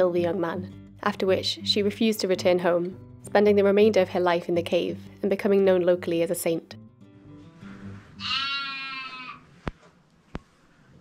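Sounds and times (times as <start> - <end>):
animal bleating: 8.2 - 9.5.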